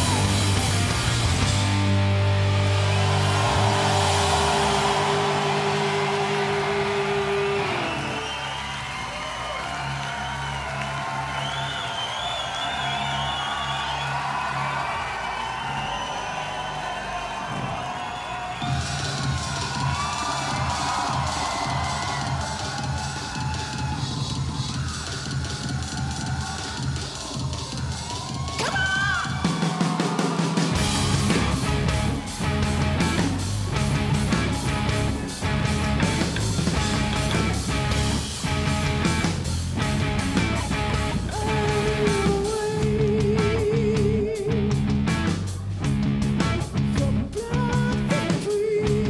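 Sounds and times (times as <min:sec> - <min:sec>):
crowd cheering and whistling: 0:00.0 - 0:44.4
rock band chord ringing: 0:30.7 - 0:42.5.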